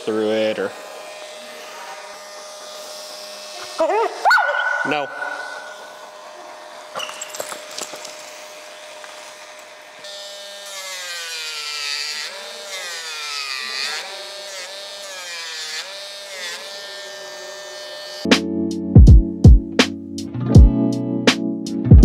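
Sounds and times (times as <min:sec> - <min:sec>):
electric nail grinder whining: 0:00.0 - 0:18.4.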